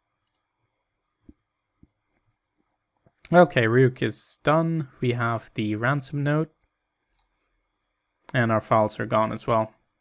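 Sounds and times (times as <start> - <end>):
faint computer mouse clicks: 0.2 - 0.5, 7.1 - 7.3.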